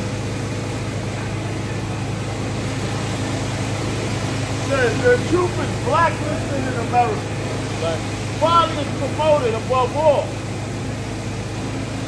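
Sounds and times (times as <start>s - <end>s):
city street noise: 0.0s - 12.0s
low mechanical hum: 0.0s - 12.0s.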